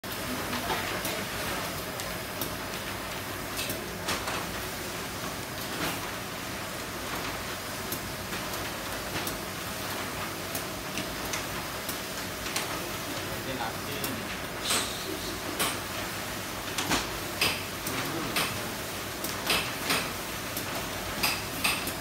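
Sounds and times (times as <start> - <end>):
machine mechanical hiss: 12.7 - 22.0.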